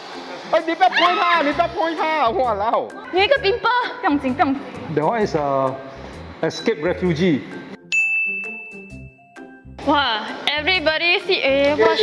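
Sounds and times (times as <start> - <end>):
soft background music: 0.0 - 12.0
bright bell-like ding: 7.9 - 9.3.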